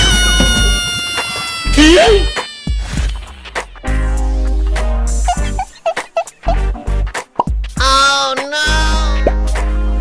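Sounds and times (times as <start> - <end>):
loud pitch-bending cry: 0.0 - 3.6.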